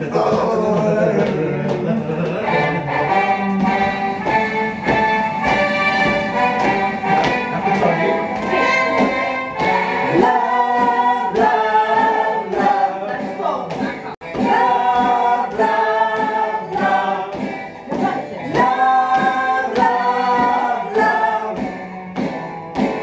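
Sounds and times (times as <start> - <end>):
group of voices singing: 0.0 - 4.6, 6.6 - 23.0.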